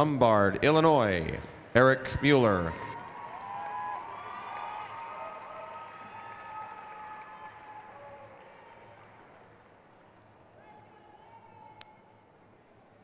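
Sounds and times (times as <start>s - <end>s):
crowd applauding and cheering: 2.9s - 9.6s.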